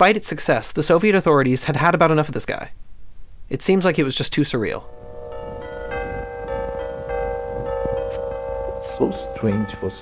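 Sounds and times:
steady low tone: 4.7s - 10.0s
bell-like tones: 4.8s - 10.0s.

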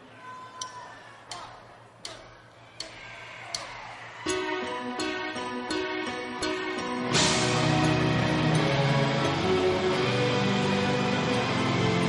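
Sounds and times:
drumsticks clicking: 0.6s - 3.9s.

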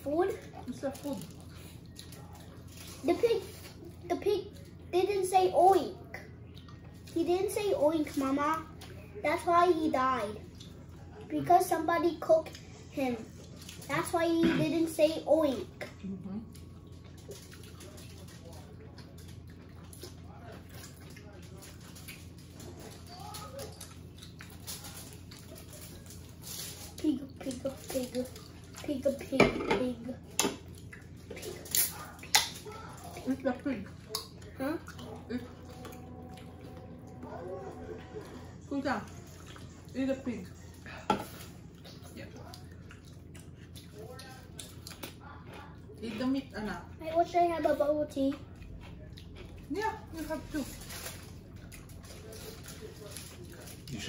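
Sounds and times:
people chewing and lip-smacking: 0.1s - 5.2s, 6.0s - 11.5s, 12.1s - 14.6s, 15.5s - 29.3s, 30.1s - 54.0s.

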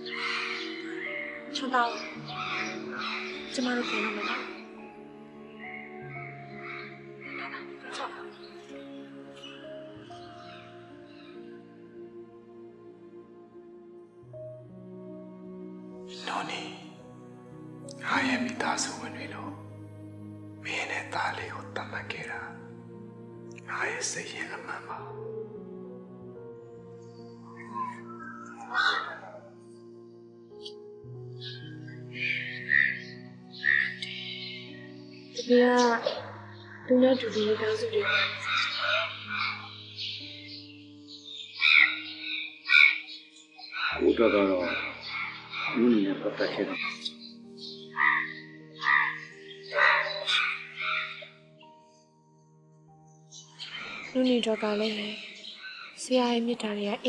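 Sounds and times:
sustained background music tones: 0.0s - 57.0s.

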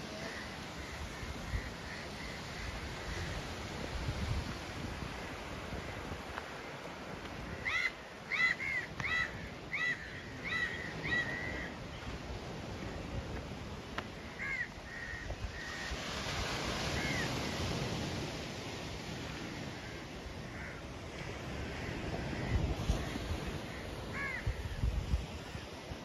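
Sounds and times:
small waves breaking on sand: 0.0s - 26.0s
bird calling: 7.6s - 12.1s.

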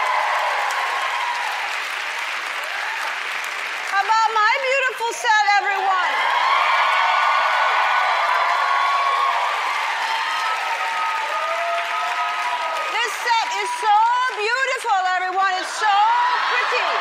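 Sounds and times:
audience applauding and cheering: 0.0s - 17.0s.

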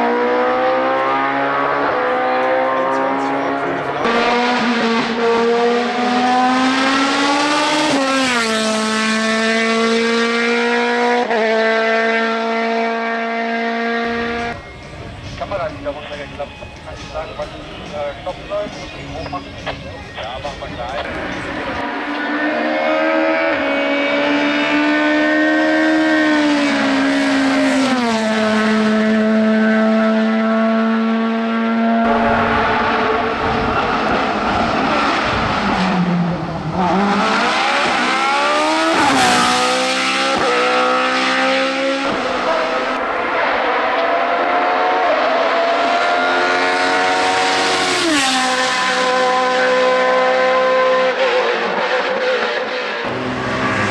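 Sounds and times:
race car engines revving: 0.0s - 53.9s.

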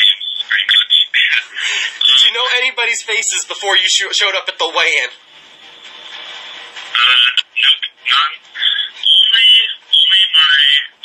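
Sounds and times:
person speaking over a phone line: 0.0s - 5.2s, 6.9s - 11.0s.

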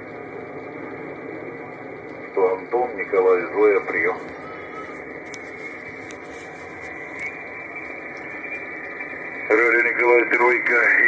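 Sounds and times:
shortwave radio hiss: 2.4s - 11.0s.

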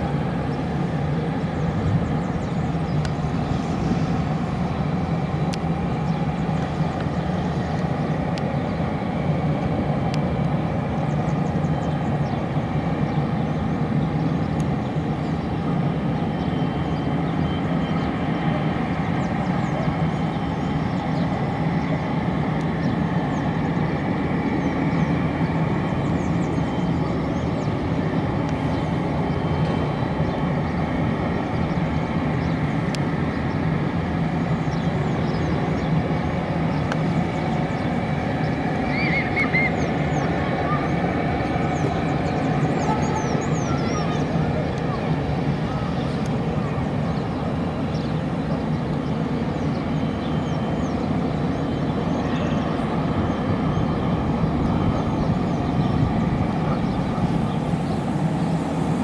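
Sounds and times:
distant airplane engines rumbling: 0.0s - 59.0s.

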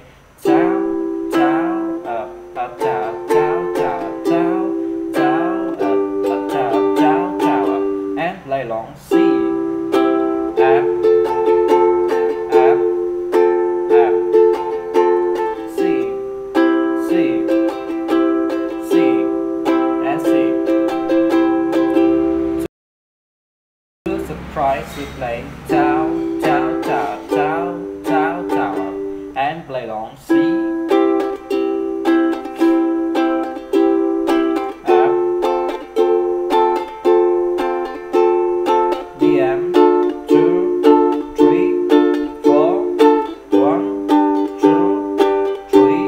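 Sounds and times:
ukulele strumming: 0.0s - 22.7s, 24.1s - 46.0s.

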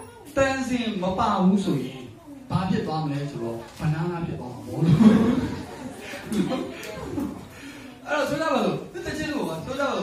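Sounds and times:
man speaking into a microphone: 0.3s - 6.9s, 8.0s - 10.0s.

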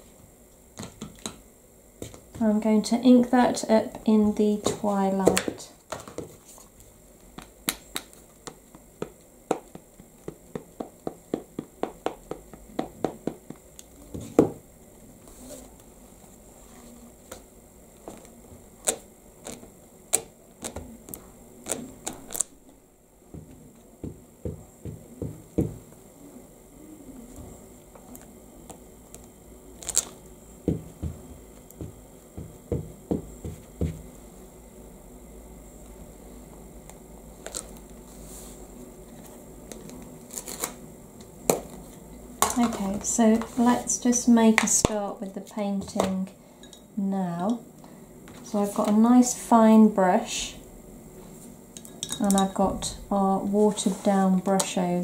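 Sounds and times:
ink pad tapping on stamp: 7.4s - 13.6s.

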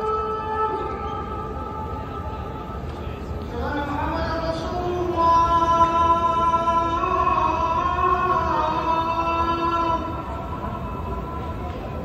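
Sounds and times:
call to prayer over loudspeakers: 0.0s - 12.0s.

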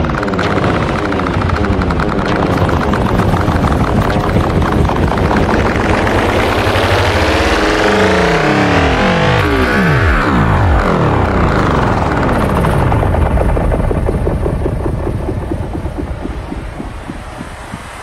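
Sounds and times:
synth sweep gliding in pitch: 0.0s - 18.0s
techno music: 0.0s - 18.0s.

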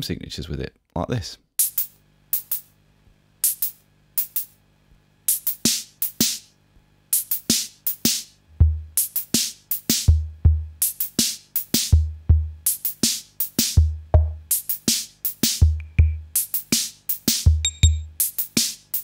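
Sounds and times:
drum machine beat: 1.6s - 2.7s, 3.4s - 4.5s, 5.3s - 6.6s, 7.2s - 19.0s
deep bass drum: 13.8s - 14.4s.

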